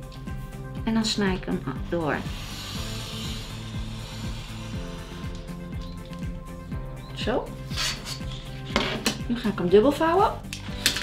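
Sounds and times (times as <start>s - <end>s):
background music with beat: 0.0s - 11.0s.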